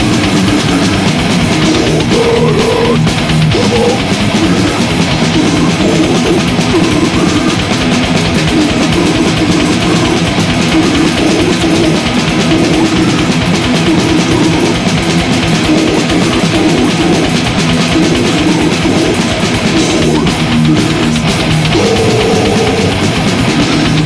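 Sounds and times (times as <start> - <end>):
distorted electric guitars: 0.0 - 24.0
fast dense drumming: 0.0 - 24.0.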